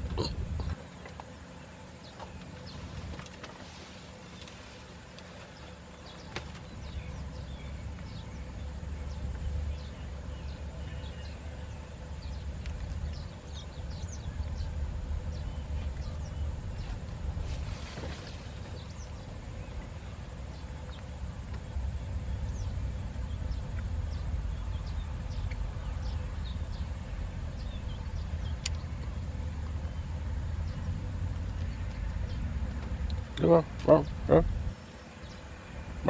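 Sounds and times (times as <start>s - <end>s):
steady low rumble: 0.0s - 36.0s.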